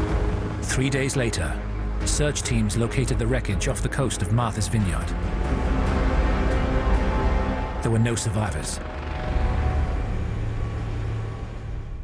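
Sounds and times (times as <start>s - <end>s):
low hum: 5.0s - 12.0s.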